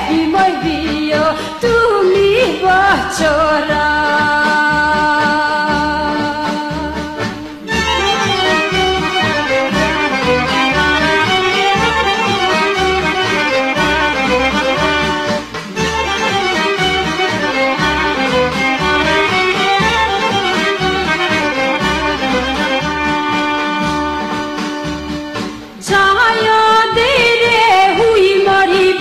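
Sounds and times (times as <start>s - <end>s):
accordion: 2.9s - 25.8s
fast violin melody: 6.8s - 27.2s.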